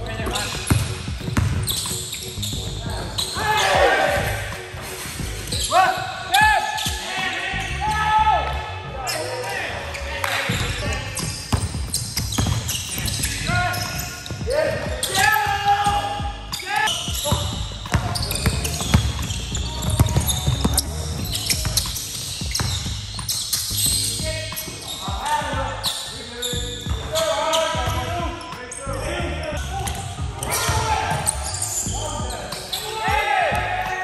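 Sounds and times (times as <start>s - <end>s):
sneaker squeaks: 0.0s - 8.0s, 9.0s - 33.9s
basketball bouncing on wooden floor: 0.4s - 1.9s, 10.5s - 16.4s, 17.1s - 23.4s.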